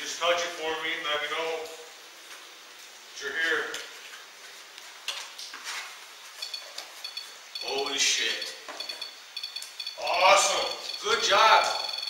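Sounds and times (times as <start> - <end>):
high-pitched electronic beeps: 6.4 - 12.0.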